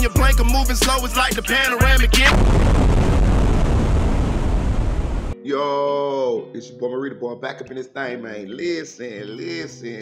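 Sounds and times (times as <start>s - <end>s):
loud low rumble: 2.3s - 5.4s.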